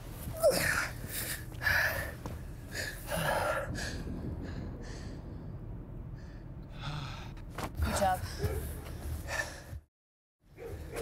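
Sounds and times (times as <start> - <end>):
low steady rumble: 0.0 - 9.6.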